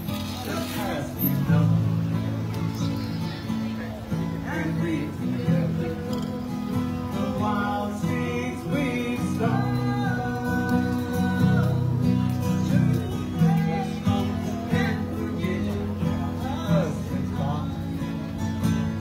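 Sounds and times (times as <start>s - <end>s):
strummed acoustic guitars: 0.0s - 19.0s
man and woman singing: 4.4s - 18.4s.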